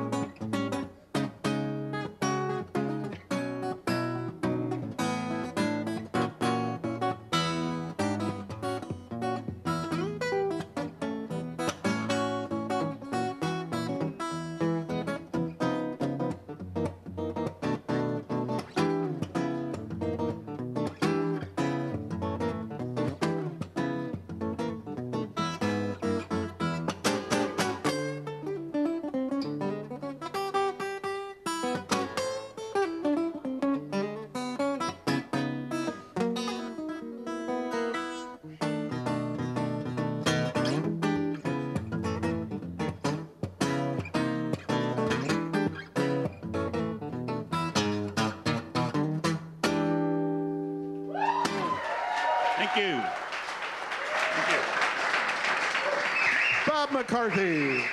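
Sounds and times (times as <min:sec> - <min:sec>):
fingerstyle guitar playing: 0:00.0 - 0:51.7.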